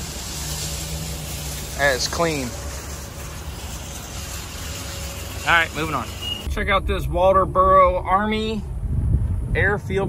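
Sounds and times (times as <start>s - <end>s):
parking lot rumble and hiss: 0.0s - 10.0s.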